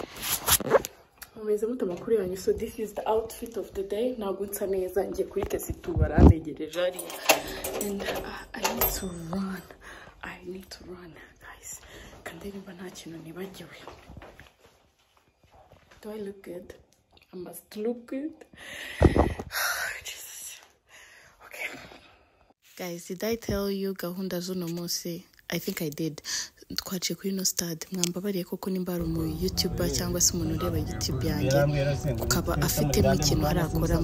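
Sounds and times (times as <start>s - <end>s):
woman speaking: 1.2s - 14.0s, 16.0s - 18.5s, 22.7s - 34.0s.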